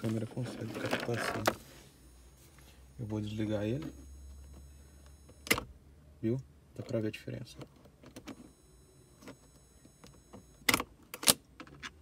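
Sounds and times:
faint high-pitched whine: 0:00.0 - 0:10.8
faint steady hum: 0:00.0 - 0:12.0.

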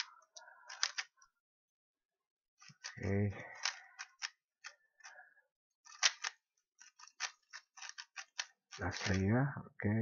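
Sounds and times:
puzzle cube plastic clacks: 0:00.0 - 0:01.2, 0:05.8 - 0:09.3.

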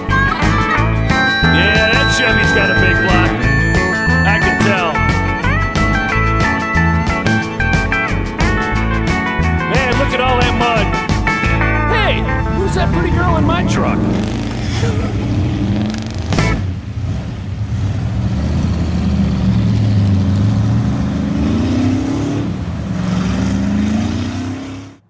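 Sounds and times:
truck engine revving: 0:00.0 - 0:25.0
voices: 0:01.1 - 0:05.2.

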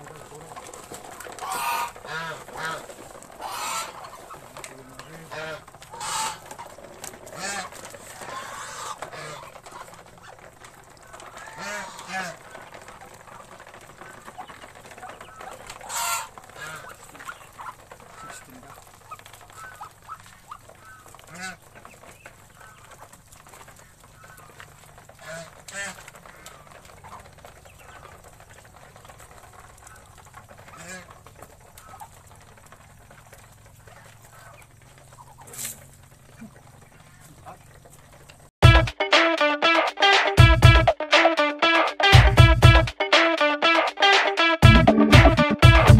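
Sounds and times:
goose honking: 0:00.0 - 0:28.3, 0:29.7 - 0:32.3, 0:38.6 - 0:45.9
ducks calling: 0:00.0 - 0:45.9
guitar music: 0:38.6 - 0:45.9.

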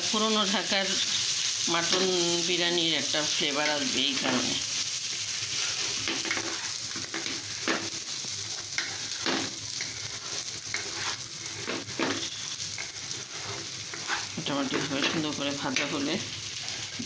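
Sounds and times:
rice sizzling in a pan: 0:00.0 - 0:17.0
spatula scraping a pan: 0:03.6 - 0:17.0.

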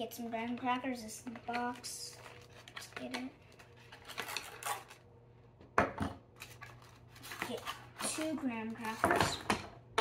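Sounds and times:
child speaking: 0:00.0 - 0:03.4, 0:07.4 - 0:09.5.

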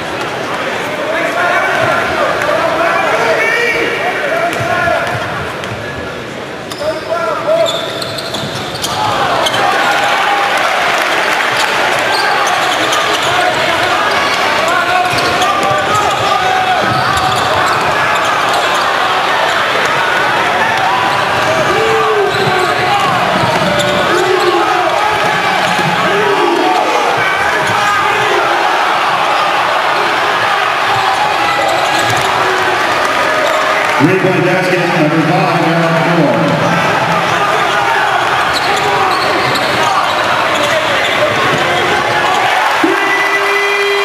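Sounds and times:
crowd noise and voices: 0:00.0 - 0:44.0.

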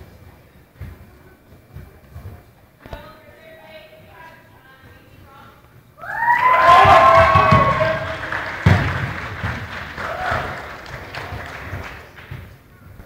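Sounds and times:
crowd murmur in a hall: 0:00.0 - 0:06.0
loud shouting voices: 0:06.0 - 0:08.7, 0:10.0 - 0:10.8.

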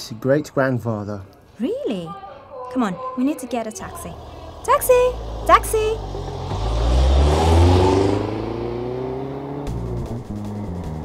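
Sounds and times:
car driving off: 0:03.8 - 0:11.0.

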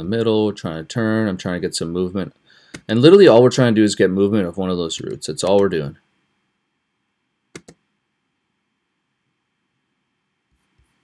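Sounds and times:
computer mouse clicks: 0:07.6 - 0:07.8.

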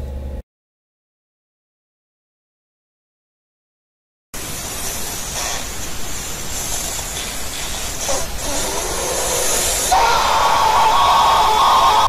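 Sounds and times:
man's strained hissing shout: 0:08.0 - 0:12.0.

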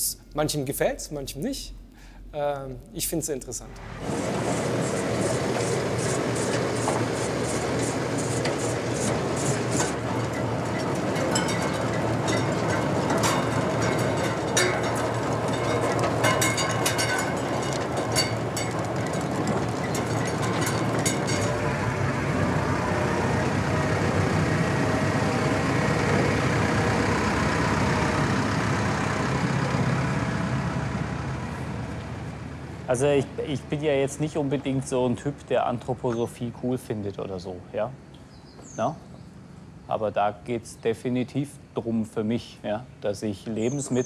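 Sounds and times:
tractor engine running: 0:03.6 - 0:35.4
rattling digger elevator: 0:03.6 - 0:36.8, 0:43.5 - 0:44.0
potatoes and clods clattering: 0:04.4 - 0:22.0.

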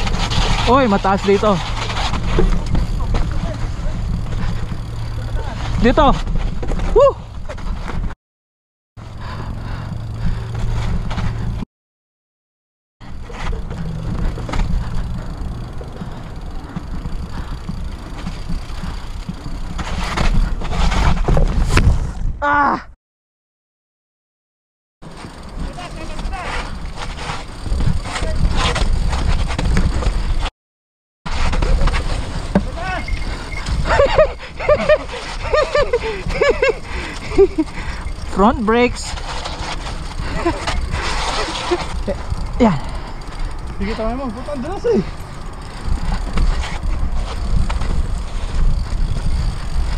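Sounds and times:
bike tyre and frame rattle: 0:00.0 - 0:08.2, 0:09.0 - 0:11.6, 0:13.0 - 0:22.4, 0:25.0 - 0:30.5, 0:31.3 - 0:49.9.

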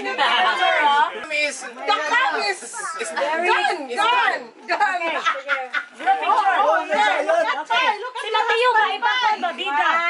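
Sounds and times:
people chattering excitedly: 0:00.0 - 0:10.0.

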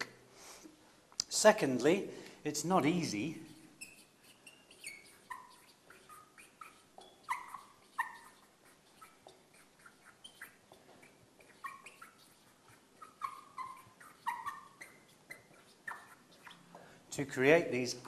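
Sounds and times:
marker squeaking on whiteboard: 0:03.1 - 0:17.7.

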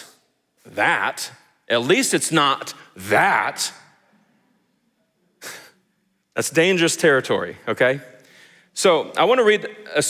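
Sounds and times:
short sharp breath: 0:08.2 - 0:08.8.

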